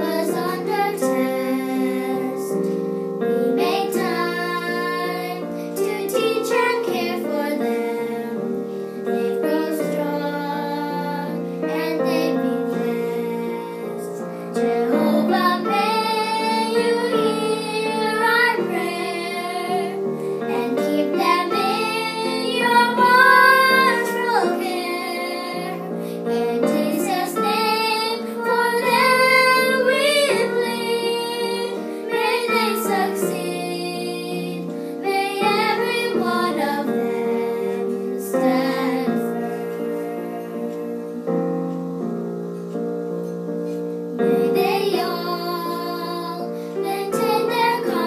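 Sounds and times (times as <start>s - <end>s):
girls singing: 0.0s - 48.0s
instrumental accompaniment: 0.0s - 48.0s.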